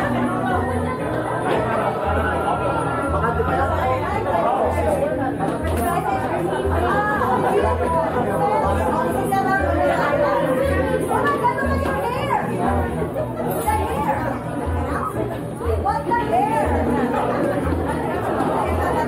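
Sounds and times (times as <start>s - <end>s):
crowd chatting: 0.0s - 19.0s.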